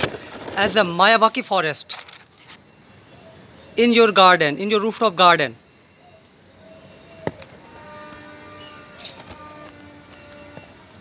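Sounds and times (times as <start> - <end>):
distant wind instrument note: 7.6 - 11.0.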